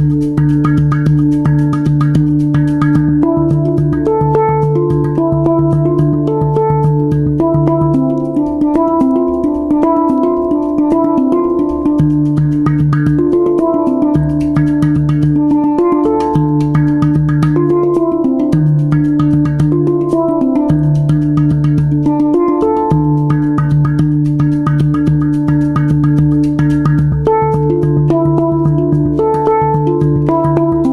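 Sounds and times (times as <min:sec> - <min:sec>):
deep low handpan note: 0:00.0 - 0:30.9
handpan notes ringing: 0:00.0 - 0:30.9.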